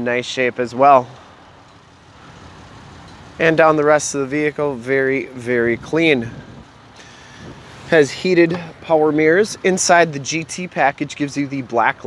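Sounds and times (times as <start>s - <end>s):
faint outdoor rumble: 0.0s - 12.0s.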